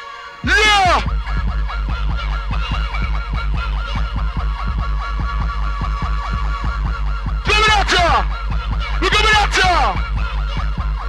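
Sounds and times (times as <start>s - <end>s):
fast bending synth riff: 0.4s - 11.0s
heavy continuous bass: 0.4s - 11.0s.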